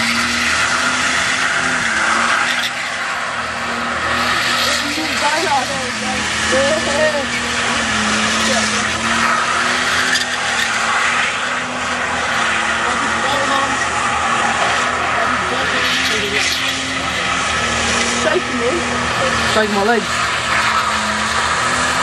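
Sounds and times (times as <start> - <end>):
engine at high revs: 0.0 - 22.0
tyres squealing: 0.0 - 22.0.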